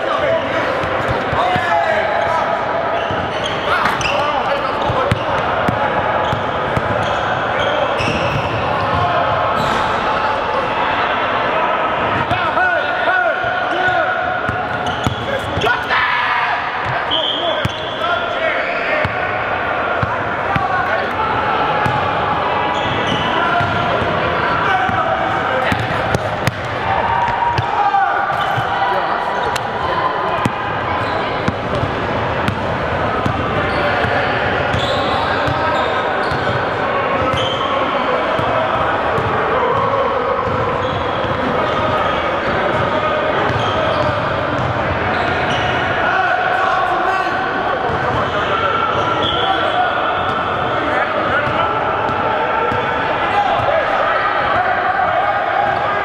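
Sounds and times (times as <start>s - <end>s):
players calling out: 0.0s - 56.0s
sneaker squeaks: 2.2s - 5.5s, 6.2s - 9.0s, 9.6s - 9.9s, 14.5s - 15.9s, 16.8s - 19.2s, 22.7s - 24.0s, 28.3s - 28.8s, 31.0s - 31.9s, 33.3s - 38.5s, 40.4s - 42.8s, 43.5s - 45.8s, 47.9s - 50.8s.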